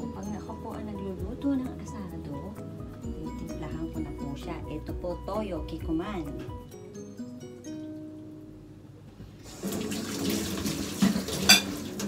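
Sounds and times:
water running into steel sink: 0:09.5 - 0:12.0.

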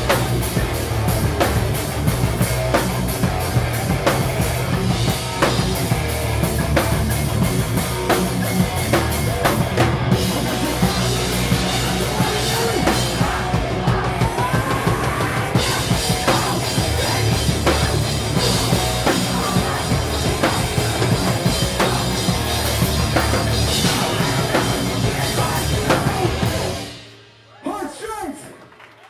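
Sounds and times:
electric guitar: 0:00.0 - 0:27.1
bass guitar: 0:00.0 - 0:27.3
drum kit fast rhythm: 0:00.0 - 0:27.4.

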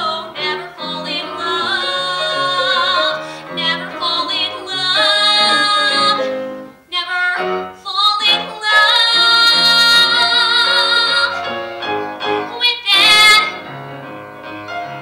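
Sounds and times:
woman singing into a microphone: 0:00.0 - 0:11.6, 0:12.4 - 0:13.6
piano accompaniment: 0:00.0 - 0:15.0.

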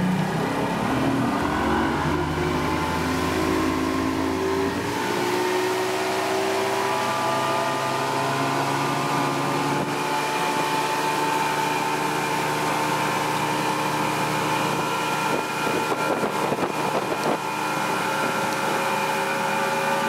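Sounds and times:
outboard motor running hard: 0:00.0 - 0:20.0.

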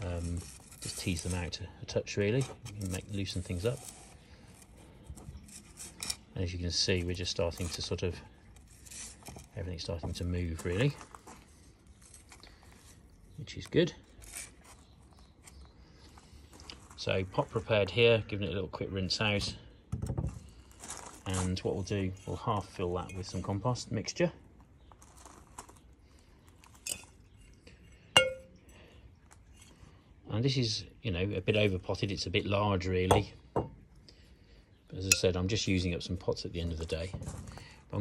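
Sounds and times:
stick scratching through soil: 0:00.0 - 0:16.3, 0:20.7 - 0:23.8
scoop clinking on flowerpot: 0:28.2 - 0:28.7.

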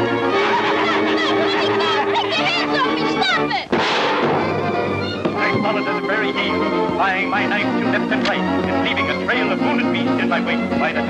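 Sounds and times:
cartoon orchestral music: 0:00.0 - 0:11.0
loud bang: 0:03.7 - 0:05.5.

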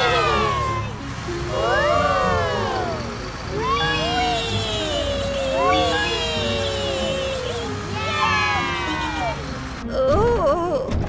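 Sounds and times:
cartoon children whooping: 0:00.0 - 0:09.6
low engine rumble: 0:00.0 - 0:10.5.

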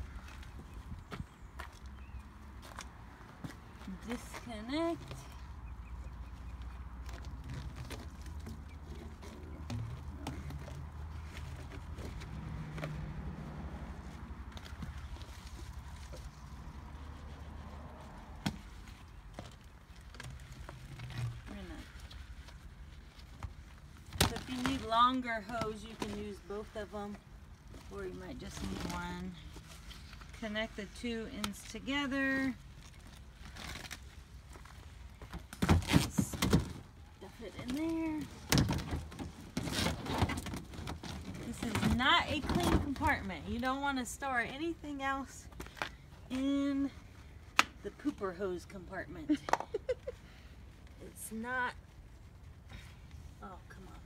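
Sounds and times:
hose rustling and scraping: 0:06.5 - 0:48.9.

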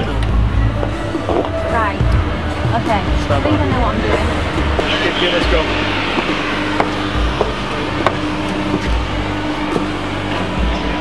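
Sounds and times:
dense crowd din: 0:00.0 - 0:11.0
deep bass pulse: 0:00.2 - 0:11.0
steady hum: 0:00.2 - 0:11.0.

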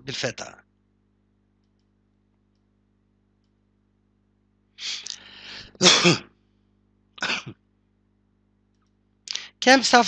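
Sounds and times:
man clearing his throat: 0:05.7 - 0:06.3, 0:07.2 - 0:07.6.

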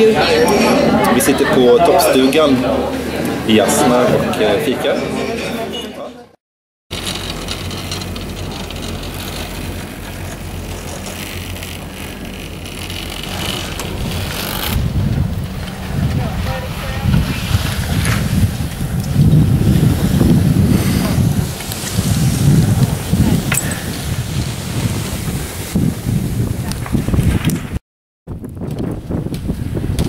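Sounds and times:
wind buffeting microphone: 0:07.6 - 0:30.0.

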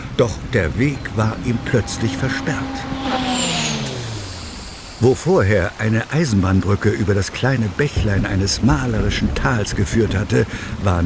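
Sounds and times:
electric train motor hum falling: 0:00.4 - 0:08.1
high brake squeal: 0:00.6 - 0:06.1.

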